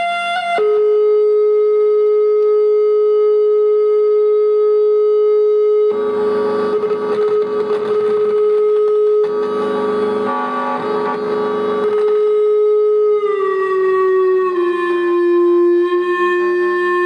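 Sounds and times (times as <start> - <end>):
rough noisy synth buzz: 0.0 - 17.0
synthesizer drone note: 0.0 - 17.0.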